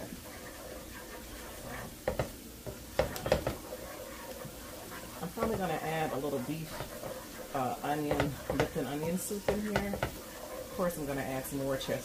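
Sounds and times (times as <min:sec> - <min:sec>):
utensil scraping a skillet: 0:00.0 - 0:12.0.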